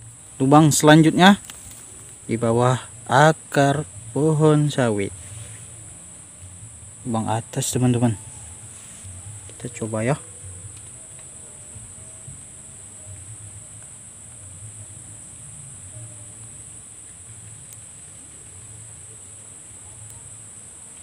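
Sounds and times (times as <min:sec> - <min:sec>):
high-pitched insect drone: 0:00.0 - 0:21.0.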